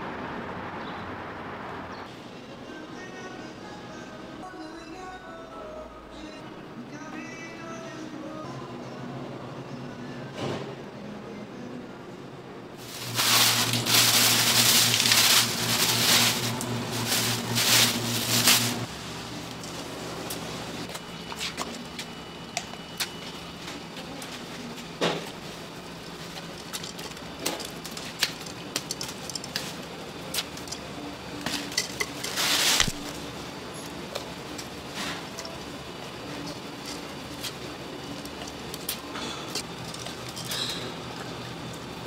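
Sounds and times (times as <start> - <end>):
steady low hum: 12.3 - 28.6
plastic bags rustling: 12.8 - 18.9, 31.6 - 33.2.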